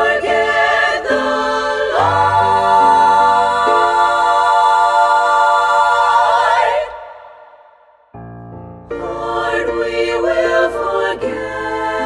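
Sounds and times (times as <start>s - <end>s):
choir holding a chord: 0.0s - 8.0s, 8.9s - 12.0s.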